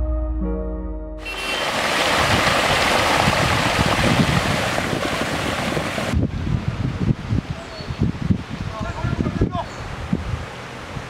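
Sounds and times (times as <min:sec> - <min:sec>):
floodwater rushing: 0:01.2 - 0:06.2.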